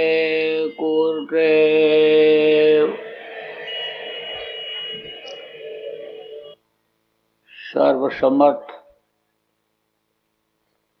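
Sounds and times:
echoing chant over loudspeakers: 0.0 - 6.6
high whistle from loudspeakers: 0.7 - 6.6.

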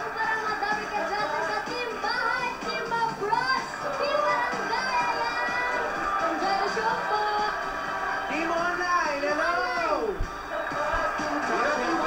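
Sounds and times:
girl's voice through microphone: 0.0 - 5.7
background music: 0.0 - 12.0.

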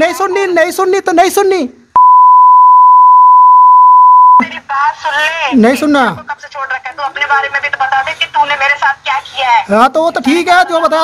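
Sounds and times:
censor bleep: 2.0 - 4.4
people arguing on phone: 4.5 - 11.0.

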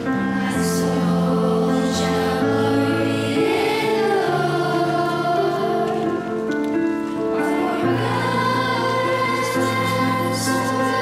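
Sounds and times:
choir singing a hymn: 0.0 - 11.0.

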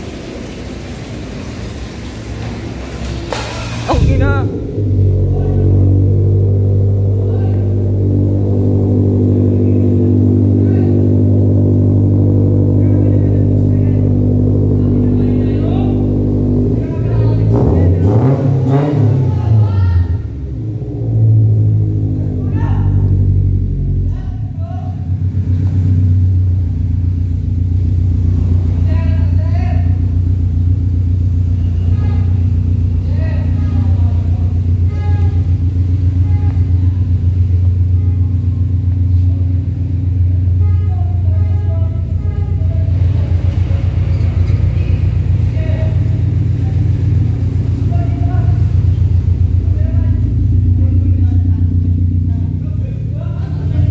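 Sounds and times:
car engine idling and revving: 0.0 - 53.9.

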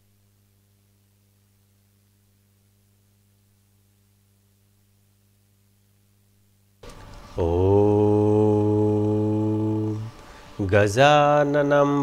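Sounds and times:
man chanting om: 7.3 - 12.0.

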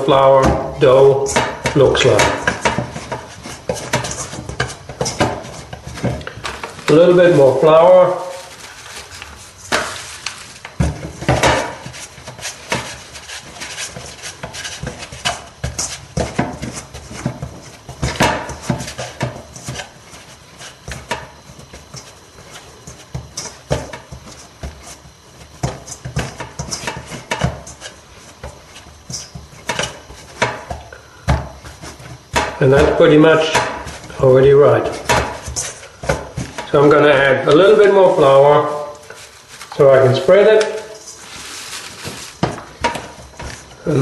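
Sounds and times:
dough thumping in metal bowl: 0.0 - 9.0, 9.6 - 41.0, 41.9 - 44.0.

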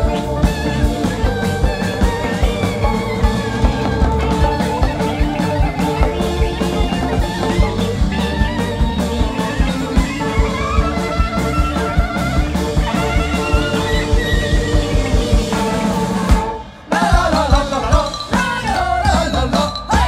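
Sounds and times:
wavering melody line: 0.0 - 16.2
bass guitar: 0.0 - 20.0
drum kit beat: 0.0 - 20.0
electric guitar: 0.0 - 20.0.

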